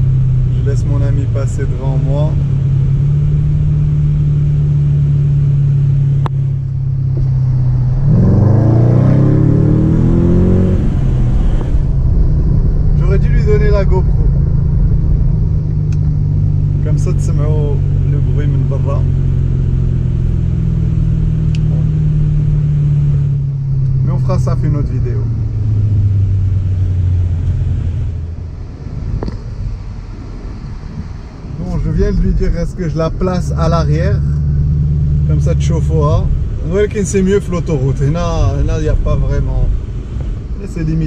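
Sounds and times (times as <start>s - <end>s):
car engine droning and accelerating: 0.0s - 41.0s.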